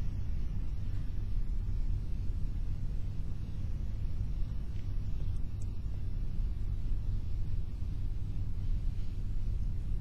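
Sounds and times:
faint ticks: 4.7s - 5.8s.

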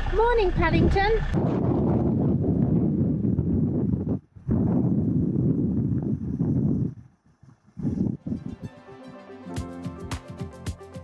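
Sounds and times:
wind and road noise: 0.0s - 8.7s.

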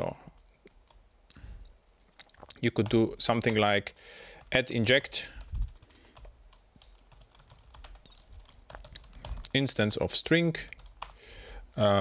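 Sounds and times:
computer keyboard clicks: 2.3s - 3.7s, 5.4s - 9.6s, 10.7s - 11.2s.

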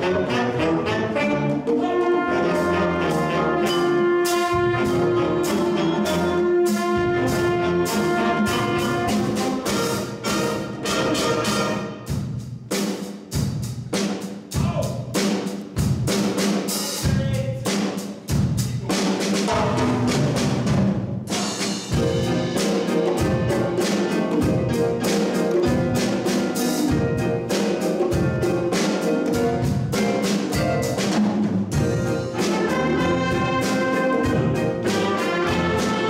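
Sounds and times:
jazz big band playing: 0.0s - 36.0s
sharp drum strikes: 12.0s - 36.0s.

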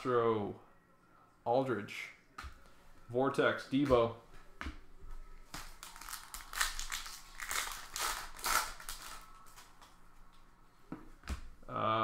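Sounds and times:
cards rustling: 5.5s - 10.0s
foil wrapper crinkling: 5.6s - 9.9s.

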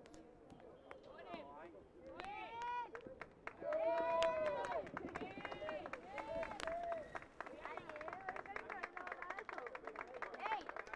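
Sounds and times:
scattered clapping: 2.2s - 10.9s.

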